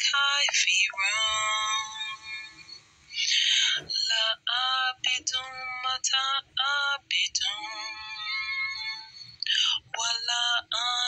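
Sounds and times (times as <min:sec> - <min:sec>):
person chanting recitation: 0:00.0 - 0:11.0.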